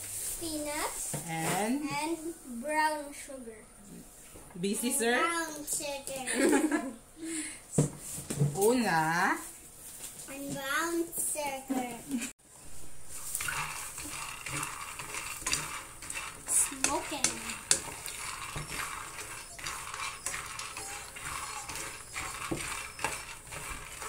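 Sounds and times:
nuts rattling in a frying pan: 13.0s - 24.0s.

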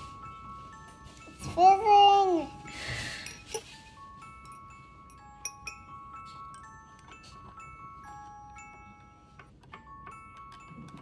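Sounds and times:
soft glockenspiel music: 0.0s - 11.0s.

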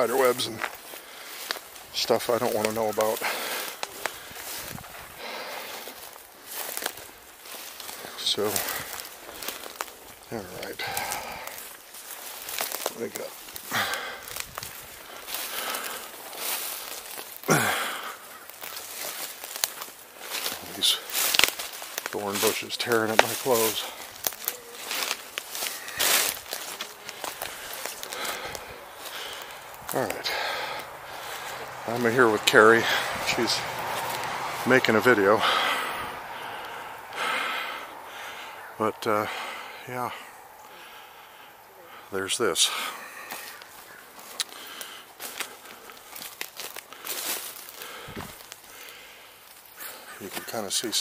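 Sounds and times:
bushes rustling against clothing: 0.0s - 51.0s
footsteps through brush: 0.0s - 51.0s.

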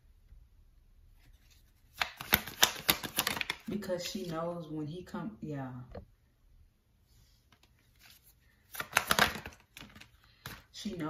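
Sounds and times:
cards being shuffled: 1.2s - 4.4s, 7.5s - 11.0s.

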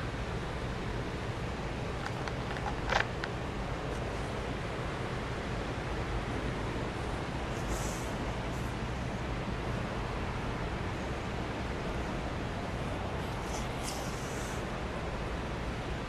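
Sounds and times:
brief high hiss: 13.4s - 14.6s.

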